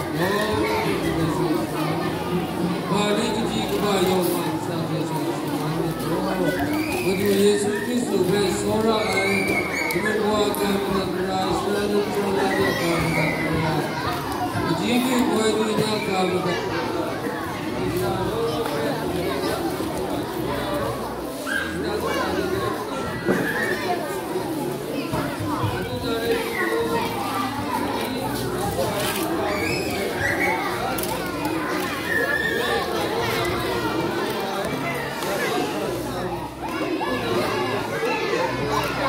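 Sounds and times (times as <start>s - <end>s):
children chattering: 0.0s - 39.0s.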